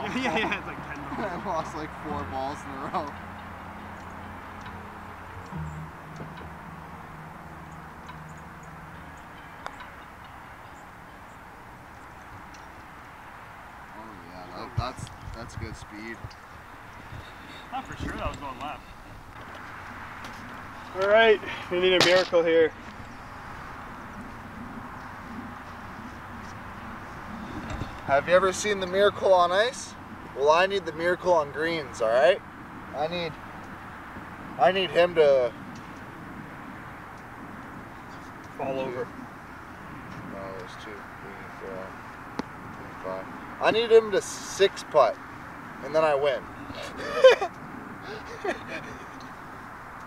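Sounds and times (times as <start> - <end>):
outdoor background hiss: 0.0 - 50.0
low motor hum: 3.2 - 10.2.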